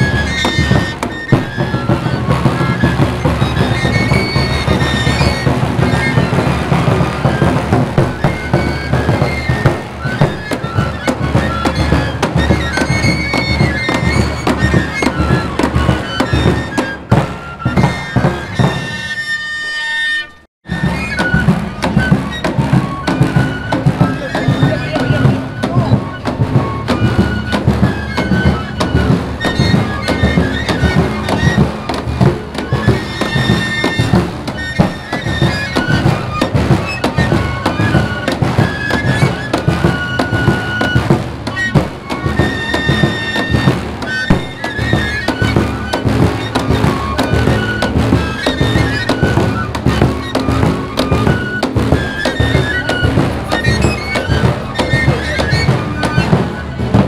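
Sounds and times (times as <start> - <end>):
steady drum beat: 0.0 - 19.0, 20.6 - 57.0
high flute melody: 0.0 - 57.0.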